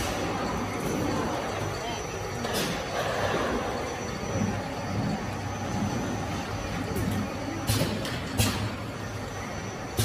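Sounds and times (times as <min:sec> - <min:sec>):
bottling line machinery running: 0:00.0 - 0:10.0.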